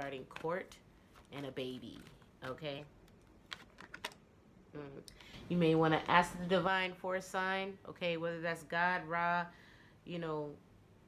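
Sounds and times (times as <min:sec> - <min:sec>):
woman speaking: 0:00.0 - 0:02.9, 0:04.8 - 0:10.6.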